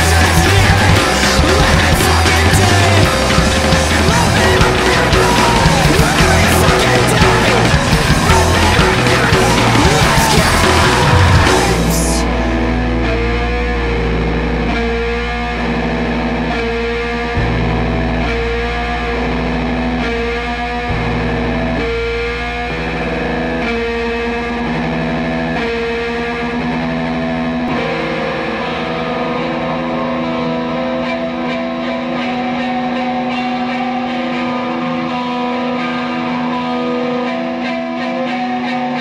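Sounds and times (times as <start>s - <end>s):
heavy low bass: 0.0s - 31.8s
distorted electric guitar: 0.0s - 39.0s.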